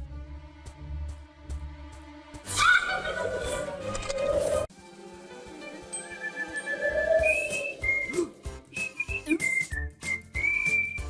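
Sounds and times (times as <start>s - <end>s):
plucky cartoon music: 2.4s - 11.0s
whistled tune: 5.9s - 11.0s.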